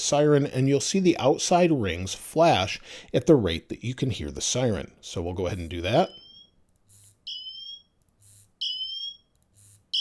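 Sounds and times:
high-pitched siren tone: 6.1 - 10.0.

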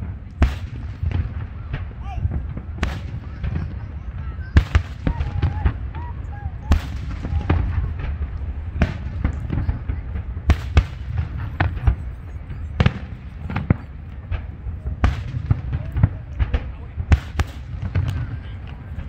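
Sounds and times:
fireworks booming: 0.0 - 19.0
fireworks pops and crackles: 0.0 - 19.0.

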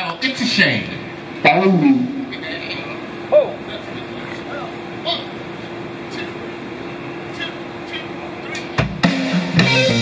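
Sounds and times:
low held hum: 0.0 - 9.0.

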